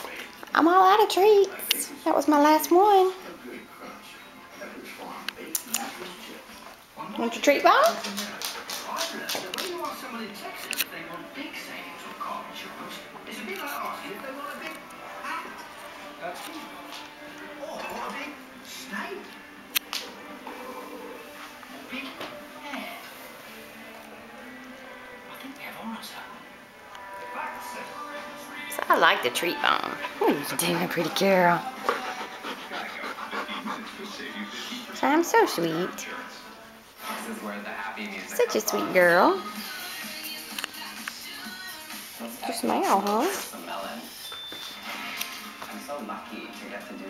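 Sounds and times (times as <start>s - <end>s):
dog claws clicking on wooden floor: 7.8s - 10.0s
dog panting: 7.8s - 10.0s, 29.6s - 35.0s.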